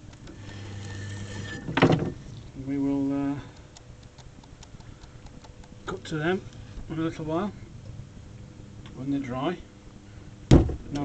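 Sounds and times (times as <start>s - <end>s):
potter's wheel motor humming: 0.0s - 4.7s
loud thud: 10.5s - 10.9s.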